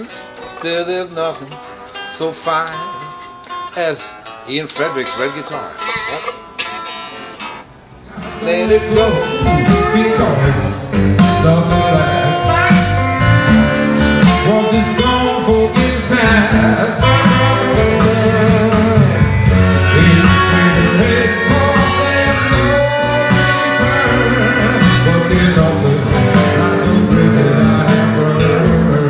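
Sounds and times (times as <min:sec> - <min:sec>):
blues-rock band playing: 0:00.0 - 0:29.0
guitars strummed: 0:00.0 - 0:29.0.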